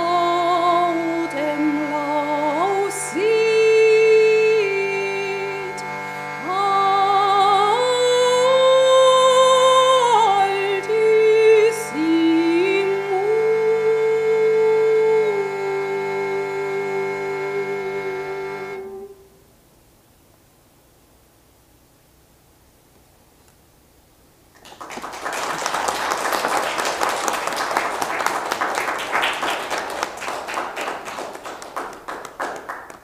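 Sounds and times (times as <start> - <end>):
shruti box reed drone: 0.0 - 19.3
woman singing chant melody: 0.0 - 19.3.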